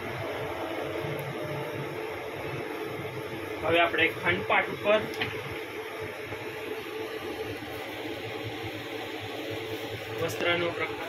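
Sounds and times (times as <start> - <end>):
room noise hum: 0.0 - 11.0.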